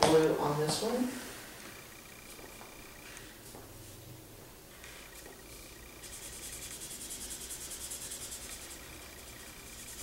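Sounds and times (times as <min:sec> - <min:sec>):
marker scribbling on paper: 0:06.0 - 0:10.0.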